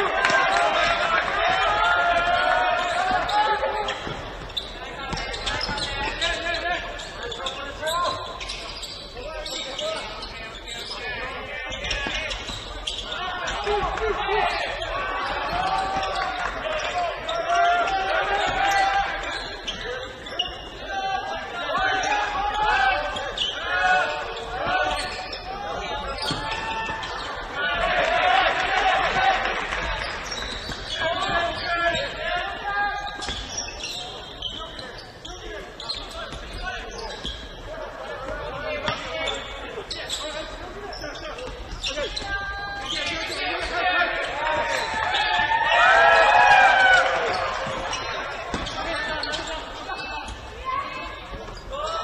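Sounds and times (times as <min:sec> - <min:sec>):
people shouting in large hall: 0:00.0 - 0:08.3, 0:11.0 - 0:33.2, 0:41.9 - 0:52.0.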